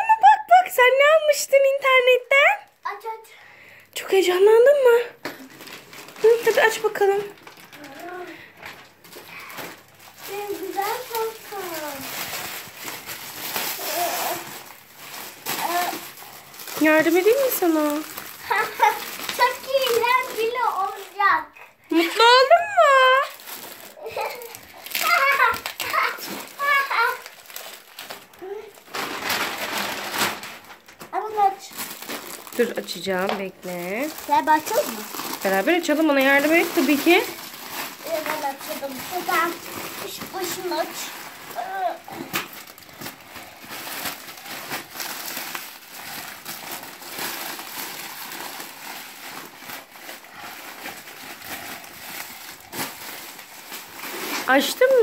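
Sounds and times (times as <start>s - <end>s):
bubble wrap crinkling: 0.0s - 55.0s
young child vocalising: 13.8s - 14.5s, 24.0s - 27.2s, 41.6s - 42.1s
rustling noise: 28.8s - 45.2s, 46.0s - 55.0s.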